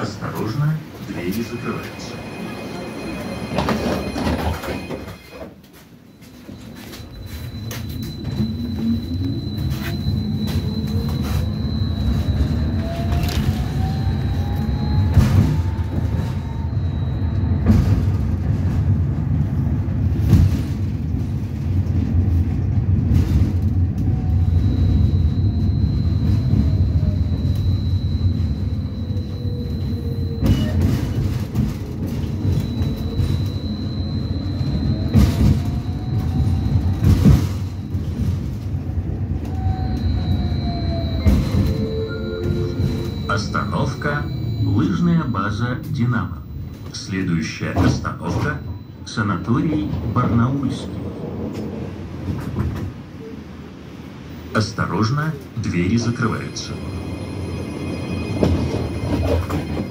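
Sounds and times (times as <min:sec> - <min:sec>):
tram electric drive whining: 0:00.0 - 0:59.9
wheels rumbling on rails: 0:00.0 - 0:59.9
thin steady whistle: 0:06.1 - 0:18.0, 0:24.0 - 0:31.3, 0:32.4 - 0:38.0, 0:39.1 - 0:45.8.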